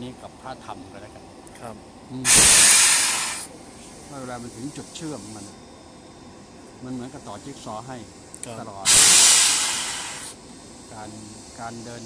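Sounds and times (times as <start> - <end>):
loud hiss: 2.2 - 12.0.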